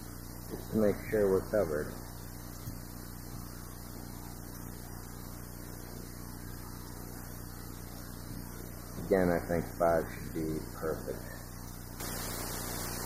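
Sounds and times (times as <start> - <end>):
background hiss: 0.0 - 13.0
low electrical hum: 0.0 - 13.0.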